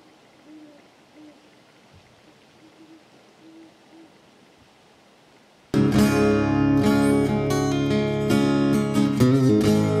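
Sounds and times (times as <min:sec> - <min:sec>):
owl hooting: 0:00.0 - 0:04.3.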